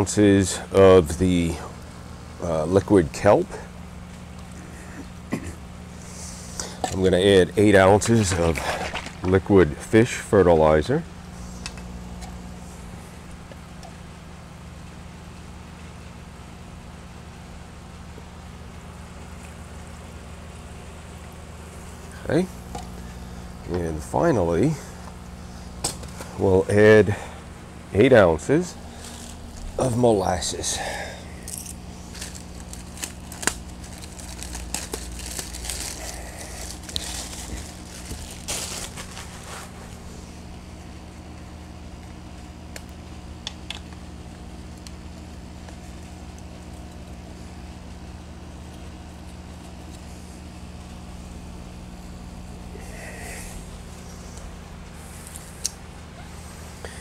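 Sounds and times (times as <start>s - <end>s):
low electrical hum: 0.0s - 57.0s
plastic clicks and crinkles: 31.5s - 39.3s.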